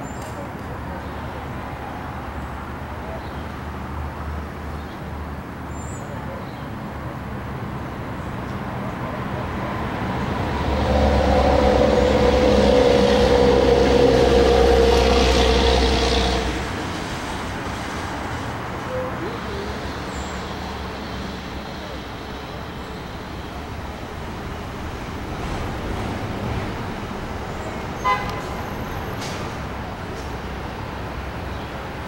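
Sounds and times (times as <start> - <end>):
outdoor background noise: 0.0 - 32.0
vehicle engine humming: 7.8 - 32.0.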